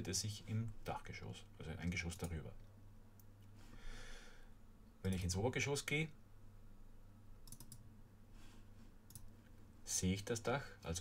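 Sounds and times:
faint low hum: 0.0s - 11.0s
computer mouse clicks: 7.4s - 7.9s, 9.1s - 9.5s.

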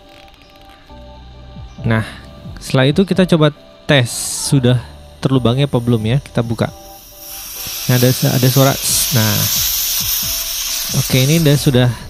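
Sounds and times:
refrigerant gas hissing from valve: 4.0s - 12.0s.

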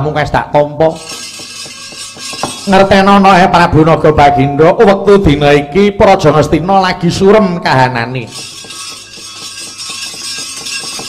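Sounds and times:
metal plates ringing: 0.9s - 3.5s, 8.2s - 11.0s.

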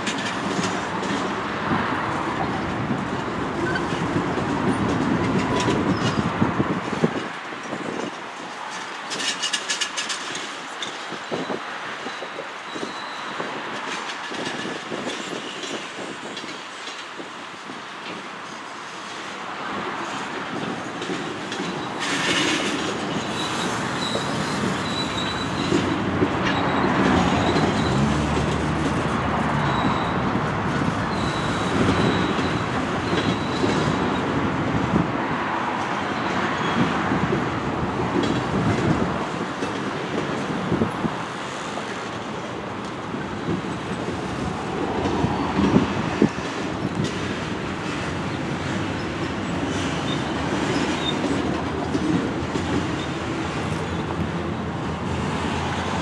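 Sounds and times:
train wheels clattering over rails: 0.0s - 35.1s, 35.7s - 56.0s
high wheel squeal: 10.9s - 13.5s, 21.6s - 28.6s, 29.3s - 34.4s, 36.2s - 37.0s, 47.8s - 51.5s.

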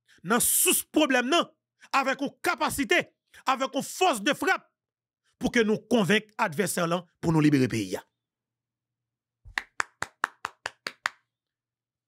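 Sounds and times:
sharp hand claps: 9.5s - 11.3s.

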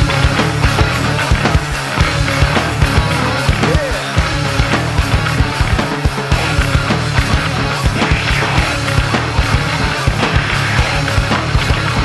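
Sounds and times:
bass: 0.0s - 12.0s
distorted guitars: 0.0s - 12.0s
hard-hit drums: 0.0s - 12.0s.

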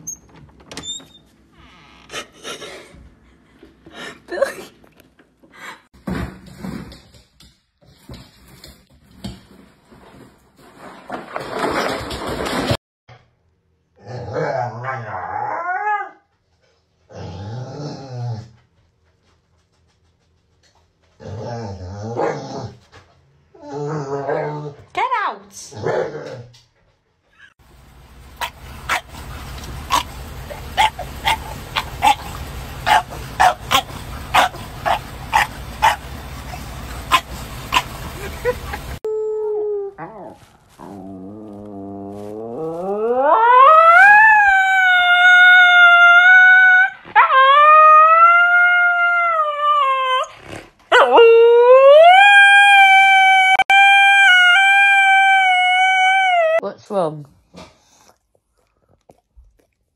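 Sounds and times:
outdoor noise: 0.0s - 59.6s
dog howling: 50.9s - 56.6s.

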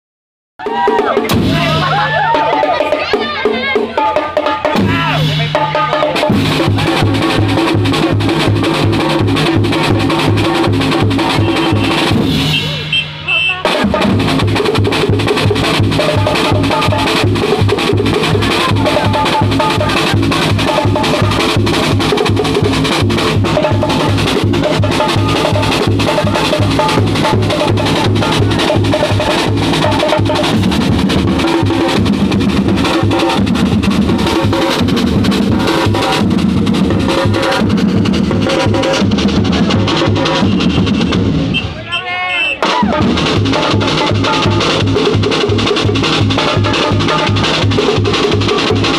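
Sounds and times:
bass drums beating: 0.6s - 48.9s
snare drums: 0.6s - 48.9s.

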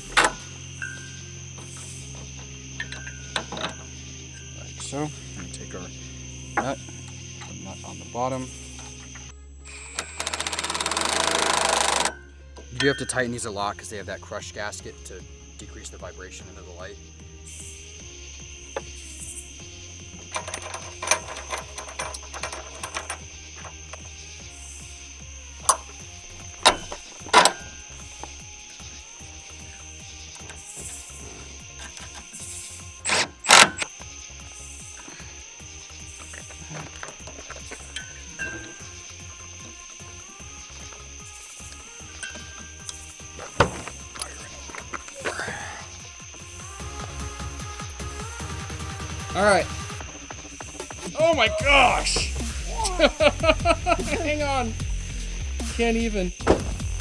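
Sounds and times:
background music: 0.0s - 57.0s
cordless driver bursts: 9.7s - 12.1s, 33.0s - 33.9s
tools clicking and knocking: 9.9s - 12.9s, 20.2s - 24.0s, 26.6s - 27.7s.

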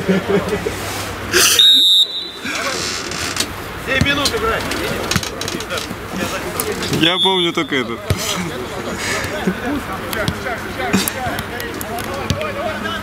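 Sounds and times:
players' voices: 0.0s - 13.0s
shrill whistle blast: 1.4s - 2.4s, 7.0s - 7.7s.

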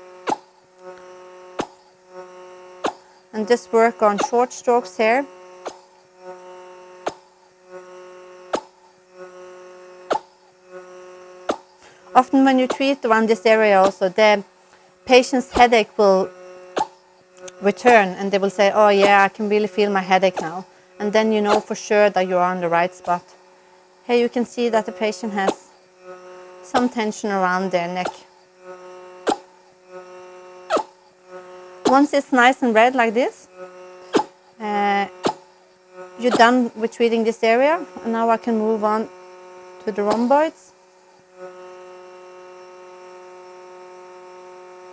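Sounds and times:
vacuum machine humming: 0.0s - 44.9s
suction cup moving over skin: 0.1s - 38.2s, 39.1s - 43.4s
suction cup popping: 0.2s - 2.0s, 7.0s - 7.4s, 8.5s - 8.9s, 10.0s - 10.5s, 11.4s - 11.8s, 16.8s - 18.2s, 29.2s - 29.5s, 30.7s - 31.1s, 34.1s - 34.6s, 35.2s - 35.6s.

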